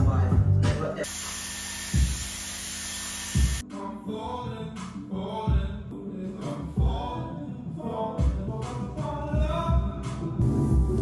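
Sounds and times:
hot-air hair brush blowing: 0:01.1 - 0:03.6
person singing: 0:03.6 - 0:10.5
music with deep beat: 0:04.7 - 0:07.2, 0:08.2 - 0:11.0.

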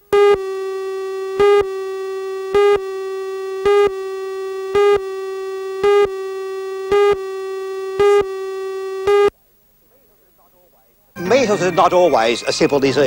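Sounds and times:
steady buzzy electronic tone: 0:00.0 - 0:09.3
countdown pips: 0:00.1 - 0:09.3, 0:11.2 - 0:12.8.

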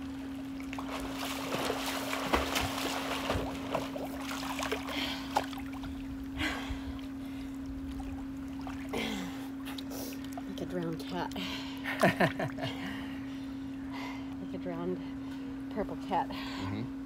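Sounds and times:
pool water splashing and lapping: 0:00.0 - 0:13.7
steady low hum: 0:00.0 - 0:17.0.

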